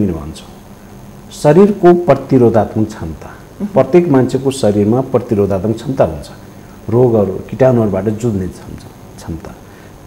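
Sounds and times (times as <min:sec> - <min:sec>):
man speaking: 0:00.0 - 0:00.6, 0:01.3 - 0:09.6.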